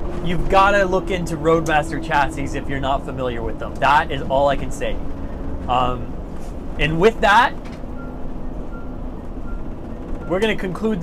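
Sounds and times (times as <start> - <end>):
diesel engine rumble: 0.0 - 11.0
road noise: 0.0 - 11.0.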